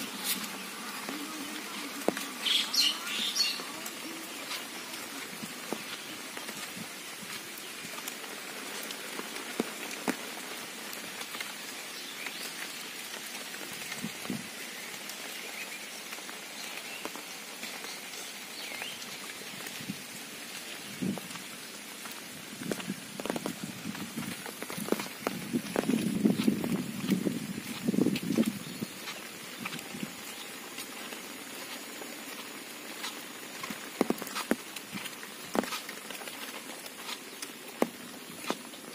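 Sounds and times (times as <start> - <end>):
steady rain falling: 0.0 - 38.9.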